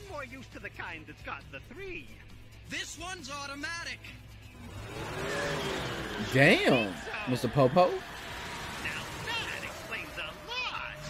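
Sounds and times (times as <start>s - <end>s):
car engine revving: 4.4s - 11.0s.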